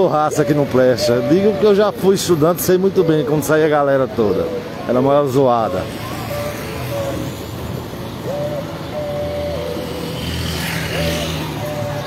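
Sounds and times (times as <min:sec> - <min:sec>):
vehicles passing on road: 0:00.0 - 0:12.0.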